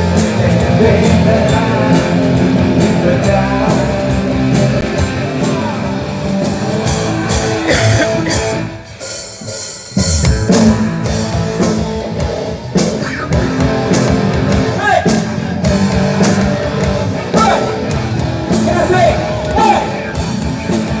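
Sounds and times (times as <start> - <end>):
rock band playing: 0.0 - 21.0.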